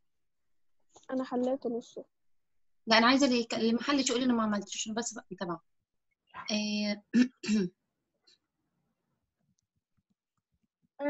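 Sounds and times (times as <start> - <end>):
person clearing throat: 7.1 - 7.8.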